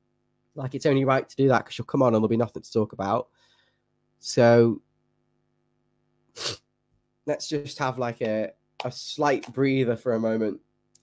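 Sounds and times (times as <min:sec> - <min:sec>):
man sneezing: 0:06.3 - 0:06.7.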